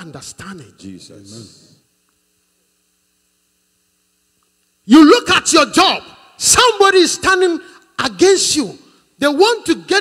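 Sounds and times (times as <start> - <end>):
man's amplified voice: 0.0 - 1.8, 4.8 - 10.0
faint hum: 0.0 - 10.0.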